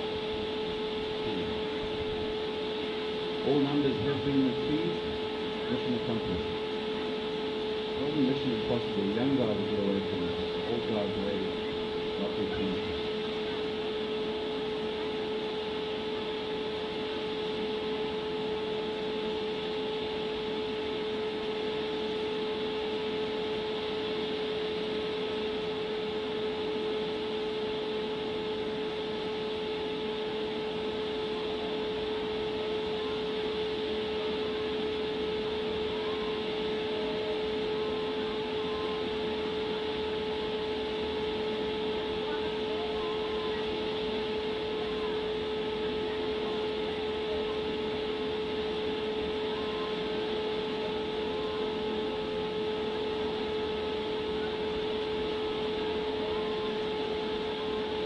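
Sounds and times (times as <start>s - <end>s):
steady machine hum: 0.0s - 58.0s.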